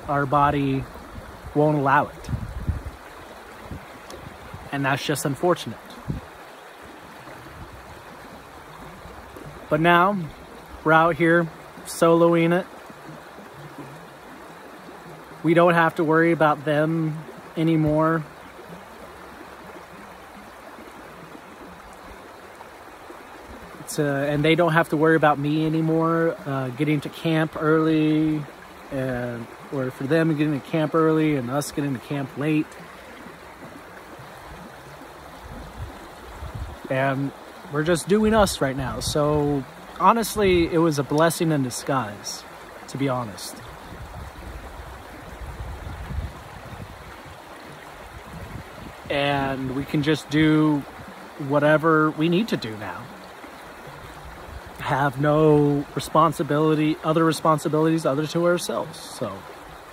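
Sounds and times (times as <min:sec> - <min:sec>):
creek flowing: 0:00.0 - 0:59.9.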